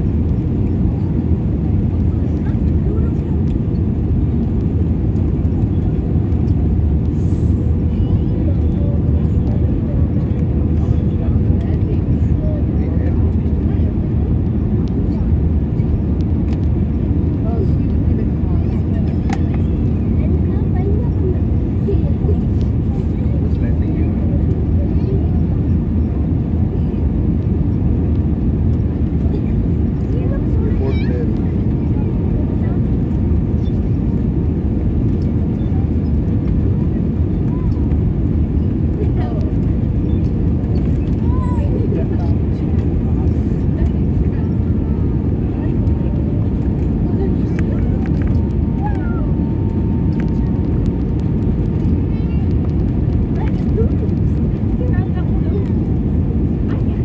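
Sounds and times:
airliner engine rumble: 0:00.0 - 0:57.0.

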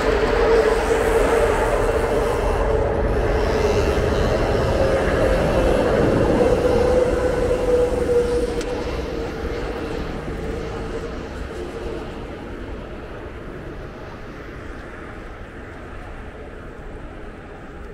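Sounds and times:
elevated train rumbling: 0:00.0 - 0:17.9.

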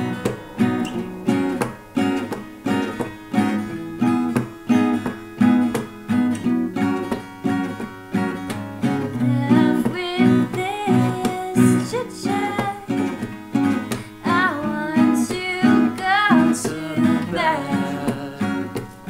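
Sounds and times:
acoustic guitars strumming chords: 0:00.0 - 0:19.0.

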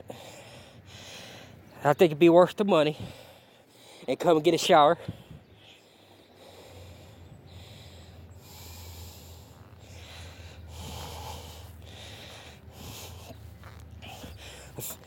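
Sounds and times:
person breathing: 0:00.0 - 0:01.6, 0:05.0 - 0:13.4, 0:14.0 - 0:14.8
steady low rumble: 0:05.0 - 0:15.0.

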